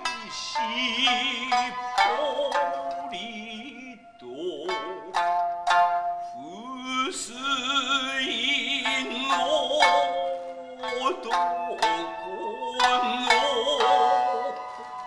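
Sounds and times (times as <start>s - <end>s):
person singing long held notes: 0.0s - 5.4s, 6.3s - 15.0s
shamisen plucks: 0.0s - 15.0s.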